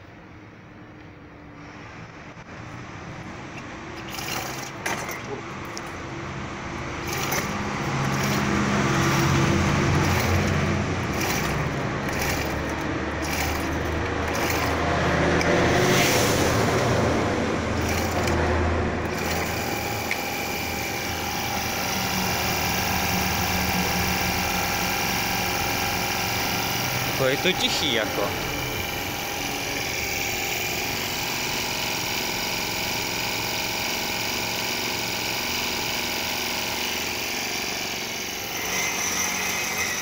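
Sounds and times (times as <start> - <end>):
cultivator engine running: 3.9 - 6.0, 6.8 - 16.0, 17.6 - 40.0.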